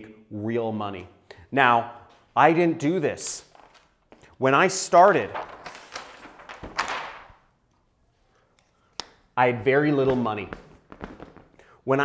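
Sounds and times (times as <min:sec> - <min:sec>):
paper sheet rustling: 0:03.5 - 0:04.1, 0:05.0 - 0:07.5.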